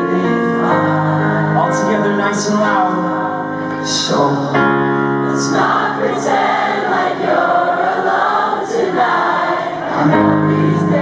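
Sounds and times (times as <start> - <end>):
audience singing in unison: 0.0 - 2.0, 5.1 - 11.0
sustained piano chords: 0.0 - 11.0.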